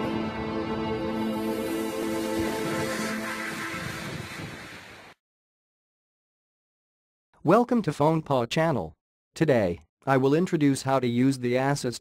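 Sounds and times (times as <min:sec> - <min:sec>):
logo jingle held notes: 0:00.0 - 0:03.8
rushing whoosh-like wash: 0:01.1 - 0:05.2.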